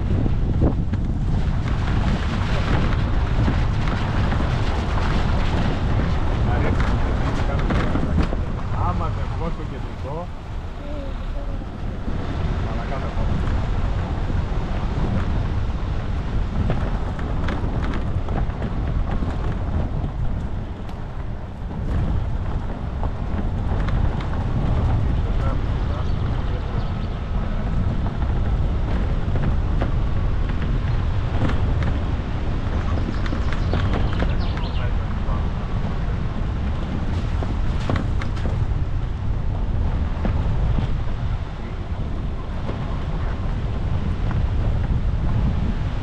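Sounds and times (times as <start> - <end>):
car rumbling on gravel: 0.0 - 46.0
knocks and rattles: 13.3 - 41.5.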